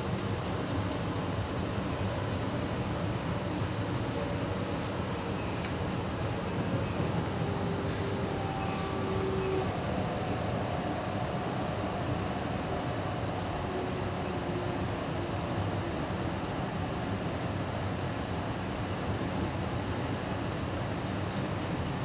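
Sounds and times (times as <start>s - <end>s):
train wheels rumbling on track: 0.0s - 22.0s.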